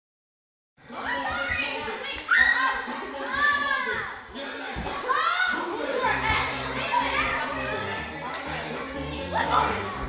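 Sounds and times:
girls chattering and calling out: 0.9 - 10.0.

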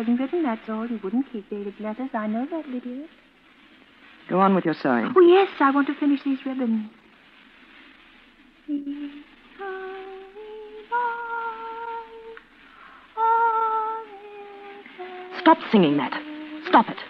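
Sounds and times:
woman humming a hymn: 8.7 - 12.4, 13.2 - 17.0.

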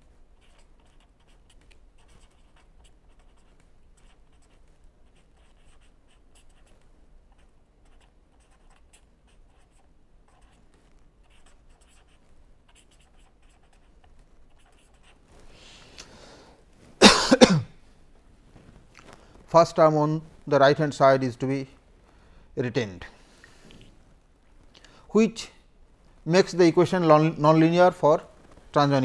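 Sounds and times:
pen scratching on paper: 0.2 - 15.3.

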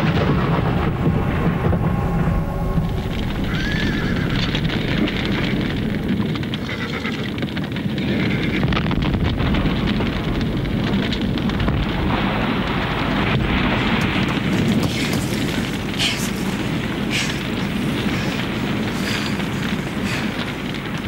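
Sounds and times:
loud rushing noise with crackles: 0.0 - 21.0
horses whinnying: 3.4 - 4.7, 6.5 - 7.4.

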